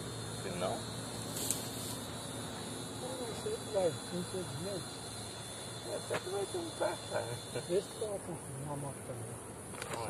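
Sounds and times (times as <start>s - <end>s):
background hiss: 0.0s - 10.0s
faint high whine: 0.0s - 10.0s.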